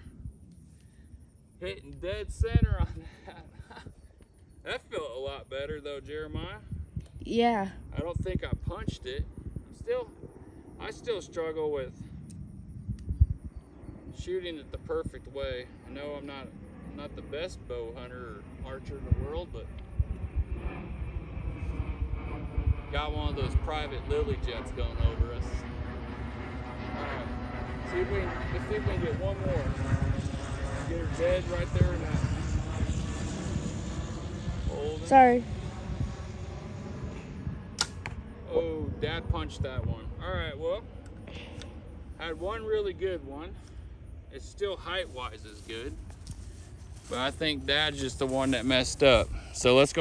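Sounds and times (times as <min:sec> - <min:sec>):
wind buffeting microphone: 0:01.6 - 0:50.0
bow shot crack: 0:37.8 - 0:38.2.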